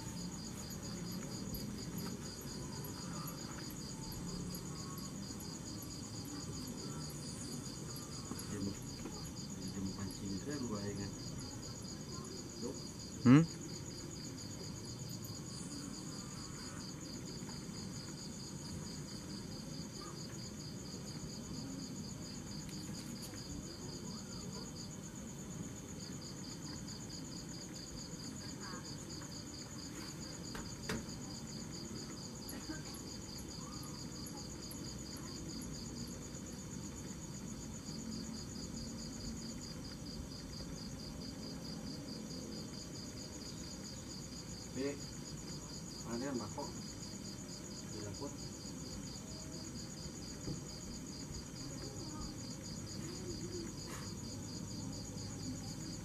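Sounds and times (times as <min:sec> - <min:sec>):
crickets chirping: 0:00.0 - 0:56.0.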